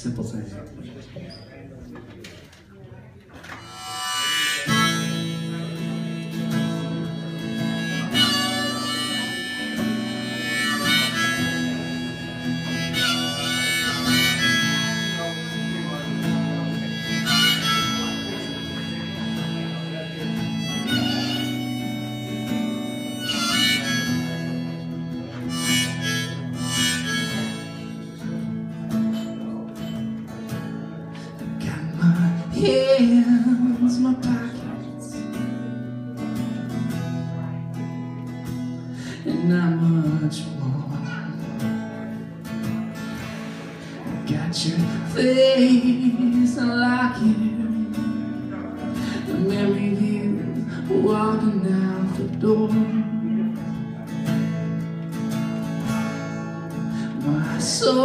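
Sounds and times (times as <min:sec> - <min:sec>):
strummed acoustic guitar: 0:03.3 - 0:58.0
harmonica wailing notes: 0:03.6 - 0:29.3.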